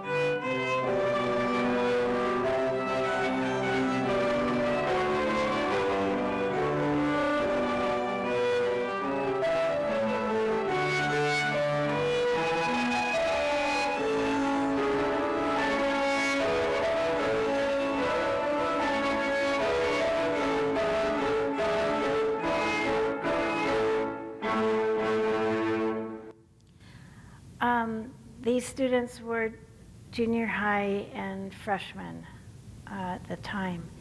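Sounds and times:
piano trio over sound system: 0.0 - 26.3.

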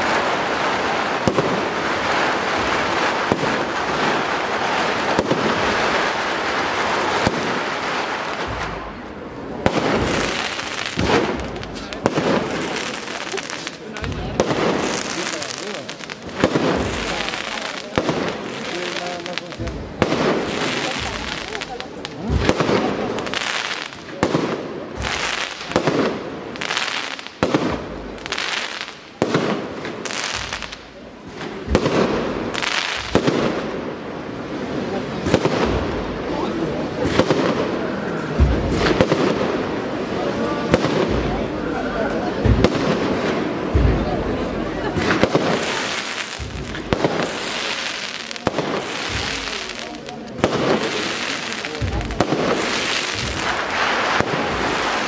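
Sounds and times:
crowd voices: 0.0 - 55.0
firecrackers banging: 0.0 - 55.0.

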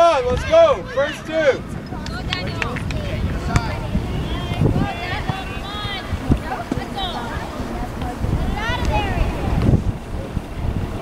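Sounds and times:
distant voices calling out: 0.0 - 11.0
wind rumble on microphone: 0.0 - 11.0.

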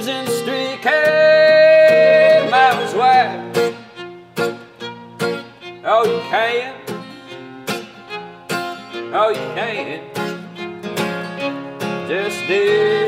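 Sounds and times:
acoustic guitar strumming: 0.0 - 13.0
fiddle playing sliding phrases: 0.0 - 13.0.

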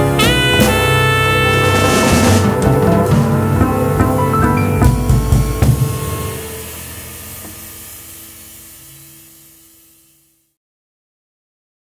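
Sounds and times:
band's final chord: 0.0 - 7.2
held low notes: 0.0 - 7.7
cymbal hiss: 4.7 - 10.6.

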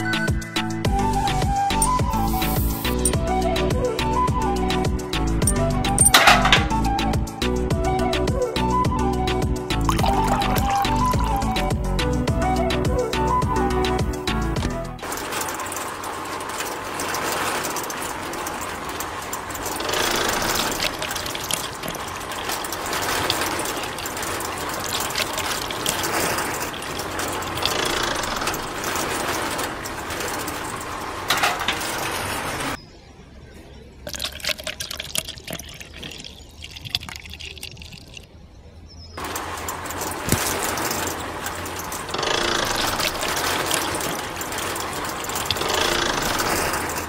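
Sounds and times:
wet concrete churning: 9.8 - 11.6, 15.0 - 32.8, 34.0 - 38.2
small concrete mixer motor: 19.6 - 22.4, 39.2 - 47.0.

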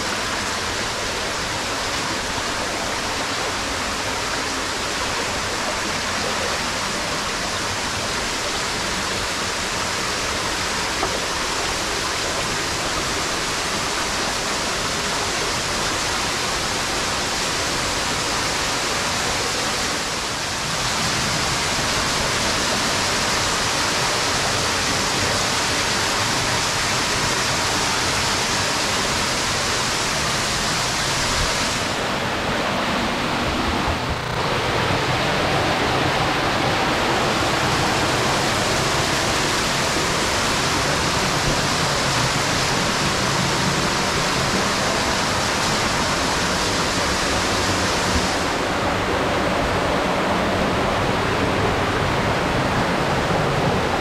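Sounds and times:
stream and small waterfall rushing: 0.0 - 54.0.

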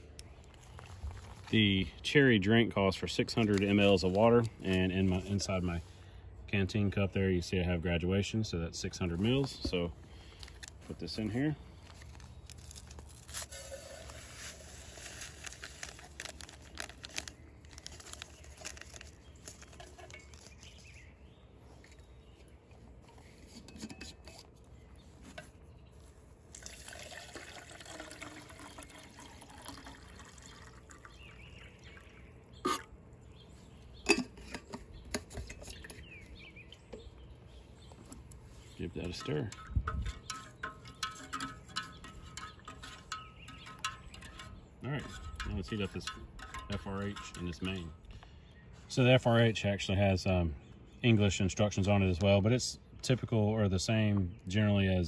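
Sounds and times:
powder shaken from foil packet: 12.0 - 20.8
water trickling into metal cup: 12.5 - 20.4, 26.5 - 32.9, 39.1 - 47.9.

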